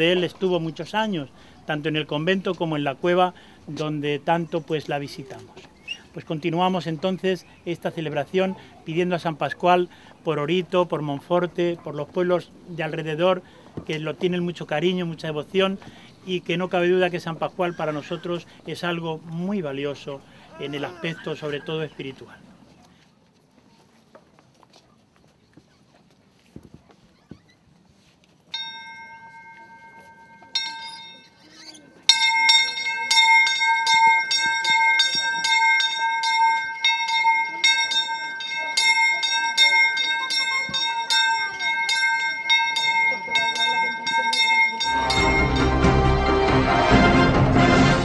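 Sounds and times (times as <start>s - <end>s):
bell ringing: 28.5s - 46.8s
loud music: 44.9s - 48.0s.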